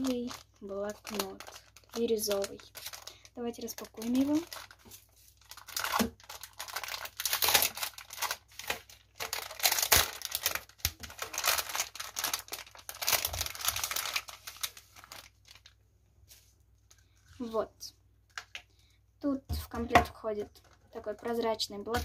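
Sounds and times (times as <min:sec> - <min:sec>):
plastic bag crinkling: 0:00.0 - 0:15.8, 0:18.2 - 0:18.8.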